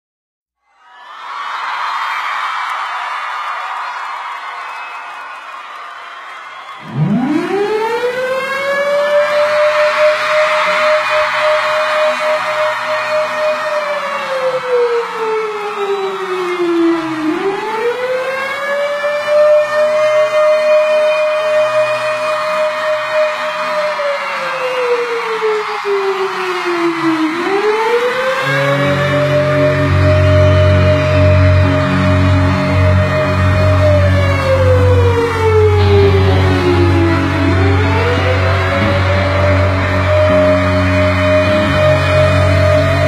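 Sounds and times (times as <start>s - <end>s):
siren-like wail: 6.7s - 43.0s.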